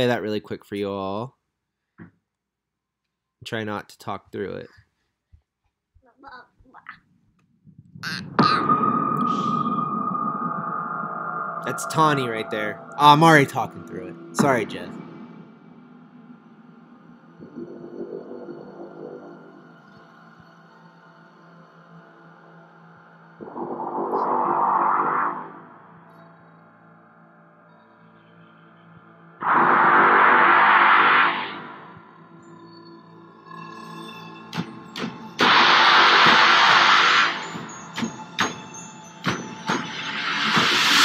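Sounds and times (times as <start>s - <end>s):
low rumbling drone: 7.7s - 19.6s
high eerie tone: 7.9s - 19.8s, 23.4s - 26.7s, 29.4s - 34.5s
harsh noise blast: 8.0s - 16.2s, 29.4s - 32.4s, 35.4s - 37.8s.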